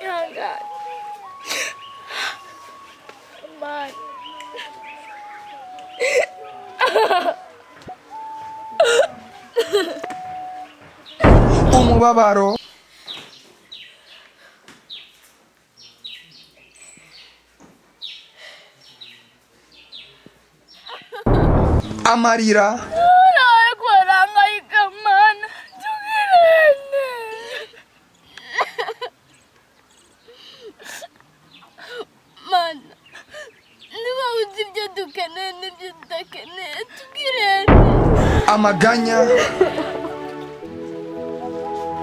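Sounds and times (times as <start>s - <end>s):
girl sobbing: 1.3s - 2.6s, 6.0s - 7.5s, 8.8s - 10.0s, 25.0s - 27.8s, 33.3s - 37.6s, 39.2s - 40.2s
steady held tone: 11.2s - 12.2s, 21.3s - 23.1s, 37.7s - 39.3s.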